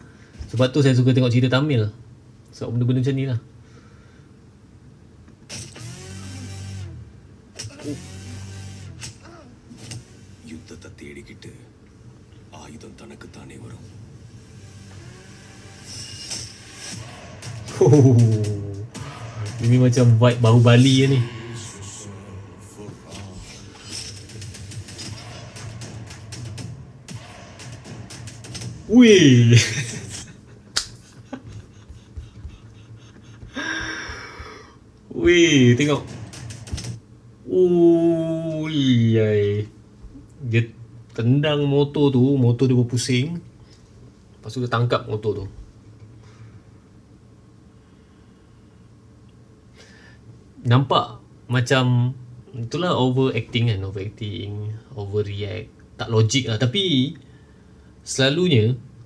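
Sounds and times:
man gasping while laughing: 31.3s - 34.8s.

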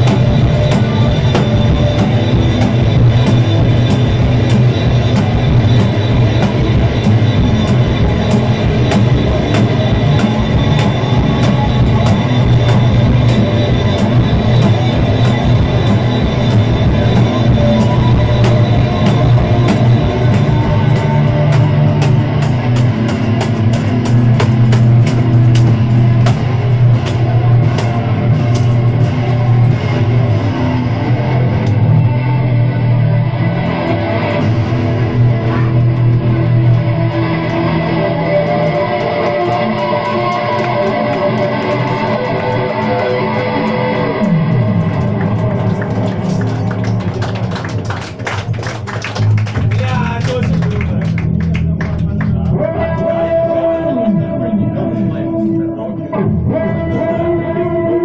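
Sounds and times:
drums: 0.0s - 54.4s
bass guitar: 0.0s - 58.0s
electric guitars: 0.0s - 58.0s
live rock band playing: 0.0s - 58.0s.

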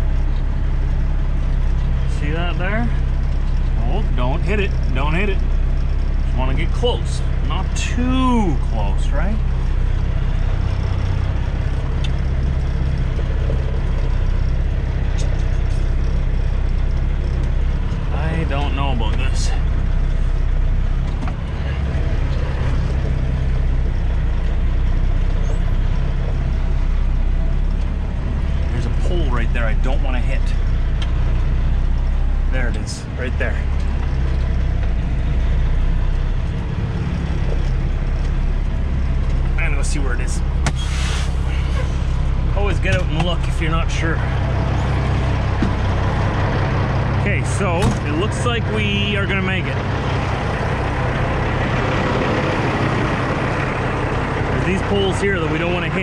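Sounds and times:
diesel truck engine running: 0.0s - 56.0s.

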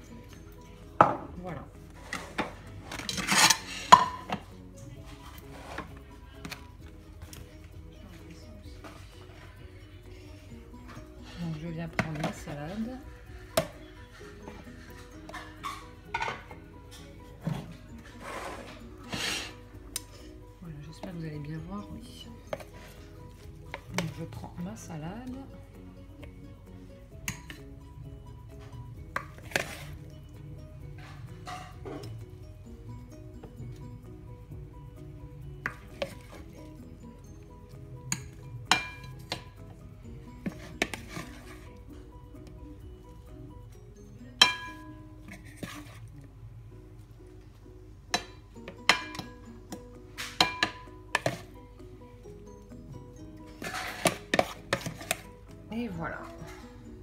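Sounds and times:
faint music: 0.0s - 57.0s.

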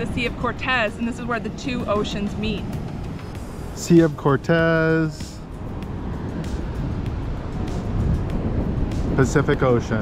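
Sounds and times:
ocean waves breaking: 0.0s - 10.0s
wind on microphone: 0.0s - 10.0s.

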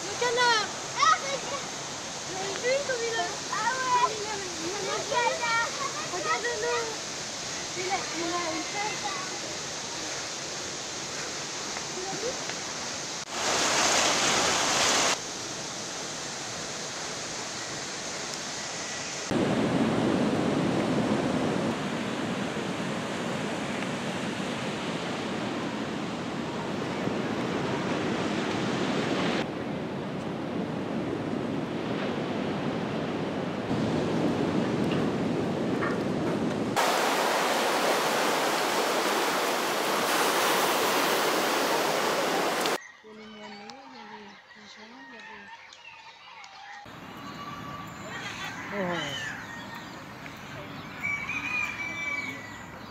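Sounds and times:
rushing water: 0.0s - 29.8s, 30.5s - 42.8s
wind: 0.0s - 52.9s.

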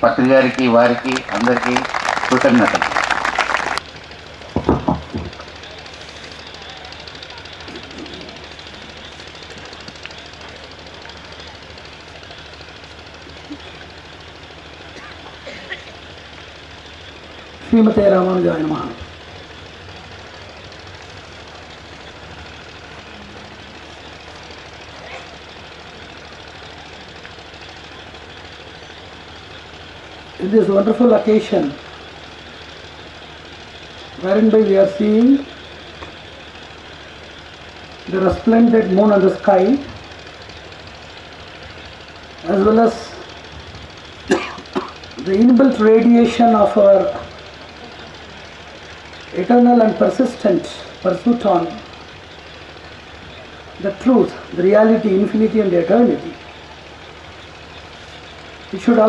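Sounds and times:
low hum and hiss: 0.0s - 59.0s
faint indistinct voices: 5.4s - 12.2s.

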